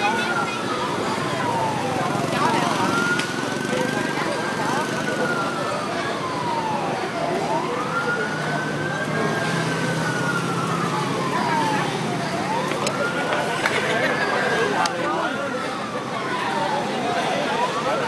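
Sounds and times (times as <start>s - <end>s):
emergency siren wailing: 0.0s - 18.0s.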